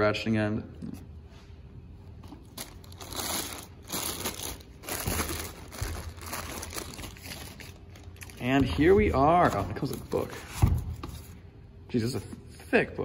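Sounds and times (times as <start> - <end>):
plastic bag crinkling: 2.3 - 9.9.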